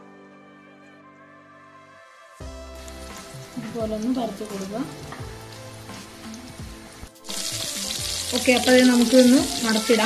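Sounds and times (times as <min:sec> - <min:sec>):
food sizzling in hot oil: 0:02.4 - 0:10.0.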